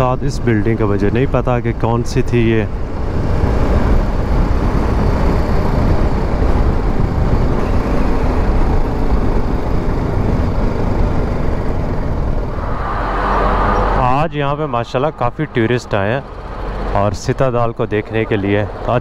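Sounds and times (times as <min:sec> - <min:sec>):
wind on microphone: 0:02.7 - 0:15.6.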